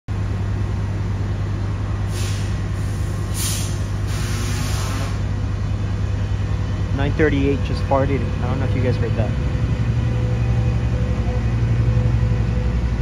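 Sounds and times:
diesel locomotive idling: 0.1s - 13.0s
hissing air blasts: 2.1s - 5.3s.

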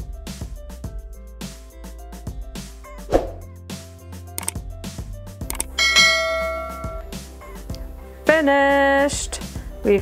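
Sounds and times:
background music with steady beat: 0.0s - 10.0s
bright bell-like chime: 5.7s - 7.1s.

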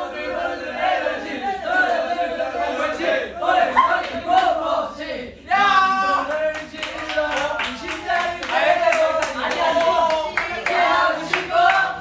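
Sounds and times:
men chanting together: 0.0s - 12.0s
rhythmic hand claps: 6.3s - 12.0s.

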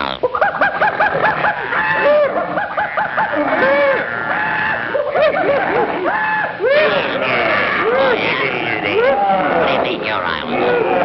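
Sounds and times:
cartoon chicken clucking: 0.0s - 7.2s.

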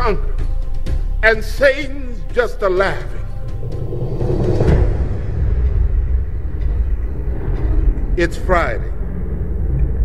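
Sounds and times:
deep low rumble: 3.1s - 10.0s.

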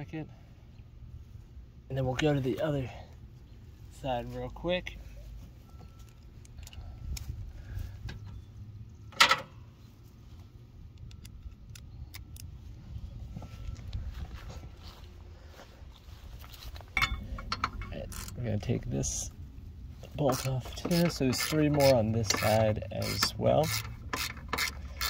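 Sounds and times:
low rumble: 10.6s - 20.8s.

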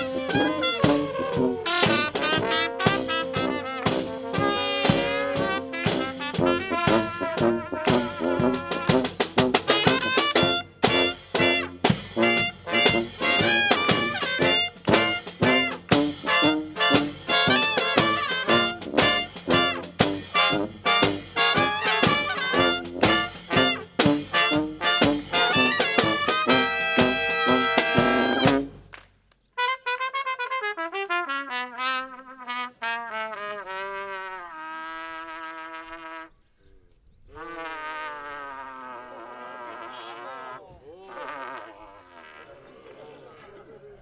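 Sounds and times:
brass band playing: 0.0s - 28.9s, 29.6s - 36.3s, 37.3s - 42.5s
lone trumpet playing: 0.0s - 28.9s, 29.6s - 36.4s, 37.3s - 42.4s.

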